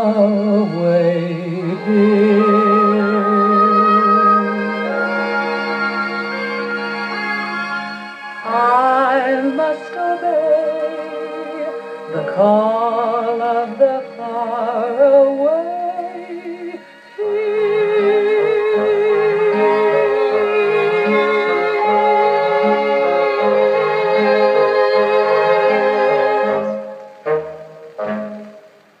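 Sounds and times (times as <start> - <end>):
woman singing with vibrato: 0.0 - 5.0, 8.4 - 26.5
closing orchestral chords: 0.0 - 29.0
orchestral strings and bass: 0.0 - 29.0.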